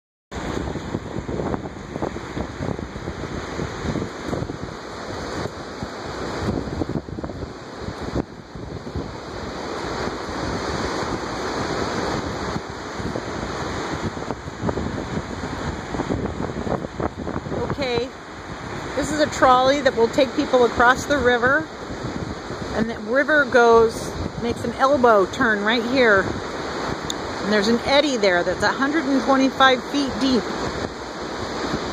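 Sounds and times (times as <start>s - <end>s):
wind gusting on microphone: 0.3s - 31.9s
whitewater rapids rushing: 0.4s - 31.9s.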